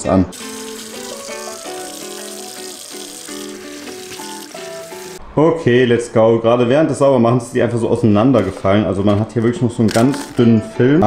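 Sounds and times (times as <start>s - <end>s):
music with simple melody: 0.4s - 5.2s, 9.9s - 11.0s.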